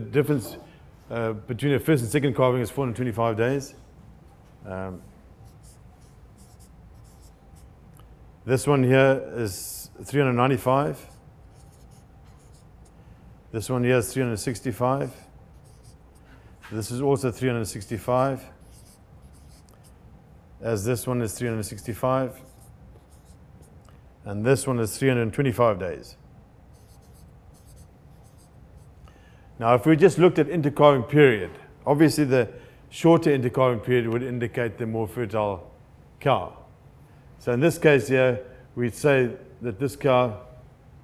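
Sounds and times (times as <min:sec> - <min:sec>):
marker scratching on paper: 0:05.4 - 0:07.7, 0:11.0 - 0:13.0, 0:15.0 - 0:17.0, 0:17.6 - 0:19.9, 0:21.3 - 0:23.8, 0:26.7 - 0:28.9.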